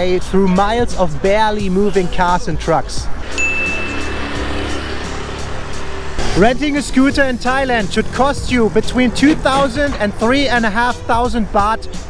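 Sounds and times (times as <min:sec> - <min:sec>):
background music: 0:00.0 - 0:12.0
motor scooter engine passing: 0:03.2 - 0:09.9.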